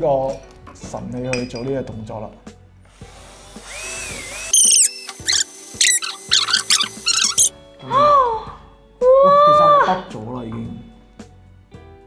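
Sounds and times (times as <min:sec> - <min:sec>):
background music: 0:00.0 - 0:12.0
high-pitched squeaky chirps: 0:04.5 - 0:07.5.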